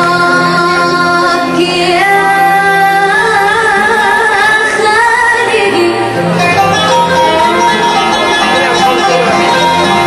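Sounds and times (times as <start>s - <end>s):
woman singing into microphone: 0.0s - 8.0s
violins and ouds ensemble: 0.0s - 10.0s.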